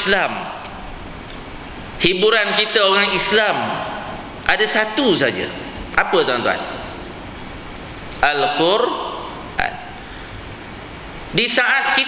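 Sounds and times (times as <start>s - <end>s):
man talking: 0.0s - 0.6s, 2.0s - 7.0s, 8.2s - 10.0s, 11.3s - 12.0s
steady background noise: 0.0s - 12.0s.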